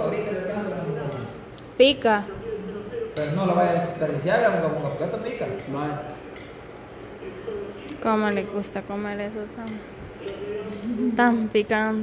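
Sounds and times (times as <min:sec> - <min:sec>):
cutlery clinking on plates: 0:03.1 - 0:04.0.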